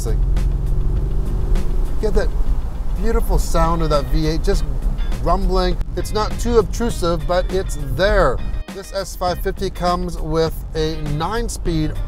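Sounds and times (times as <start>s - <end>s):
car engine rumbling while driving: 0.0s - 12.0s.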